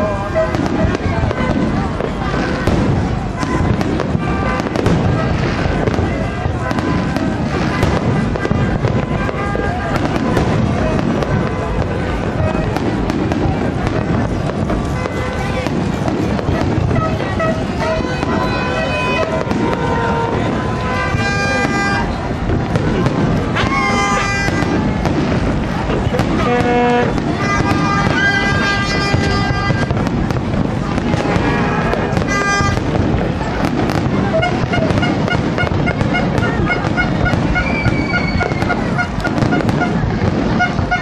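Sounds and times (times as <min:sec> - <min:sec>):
fireworks bursting and crackling: 0:00.0 - 0:41.0
sharp fireworks pops: 0:00.0 - 0:41.0.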